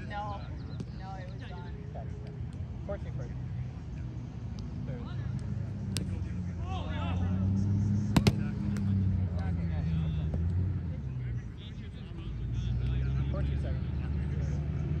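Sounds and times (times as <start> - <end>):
ball bouncing off net: 8.2 - 8.9
steady low rumble: 8.2 - 9.7.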